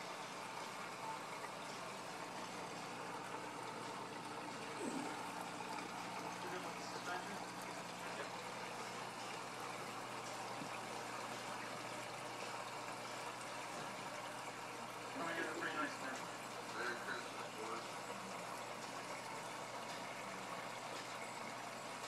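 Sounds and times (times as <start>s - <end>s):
low electrical hum: 0.0s - 22.0s
water trickling: 0.0s - 22.0s.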